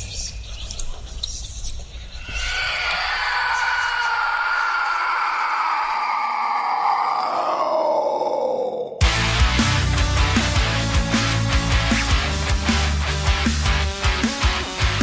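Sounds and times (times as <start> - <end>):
groan-like sound falling in pitch: 2.2 - 9.0.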